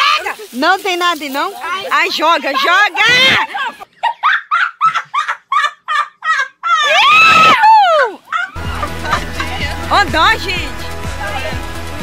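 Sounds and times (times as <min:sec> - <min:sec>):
women shrieking with laughter: 0:00.0 - 0:00.5, 0:02.5 - 0:09.6
long loud scream: 0:06.8 - 0:08.6.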